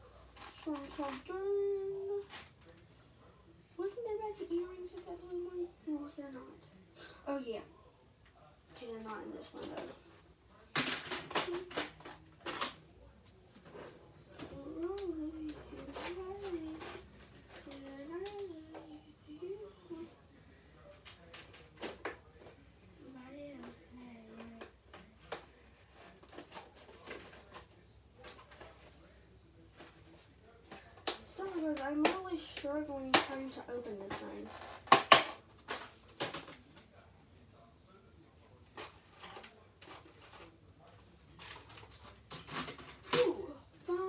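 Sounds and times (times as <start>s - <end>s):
clicks and rattles of small items: 0.3s - 2.9s, 10.7s - 12.8s, 24.4s - 29.0s, 29.7s - 36.9s, 38.7s - 44.0s
child's voice: 0.4s - 2.4s, 3.8s - 6.6s, 14.4s - 17.0s, 17.6s - 20.1s, 31.3s - 34.5s, 43.1s - 44.0s.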